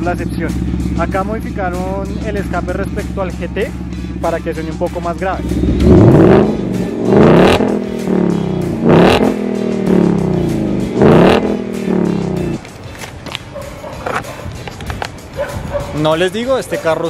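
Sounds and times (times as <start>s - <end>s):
car engine idling: 0.0s - 12.6s
car engine revving: 0.0s - 12.6s.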